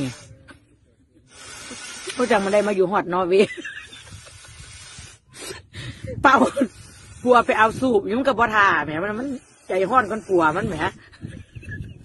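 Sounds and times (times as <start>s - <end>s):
breath blown into inflatable valve: 1.3s - 2.8s, 4.0s - 8.0s.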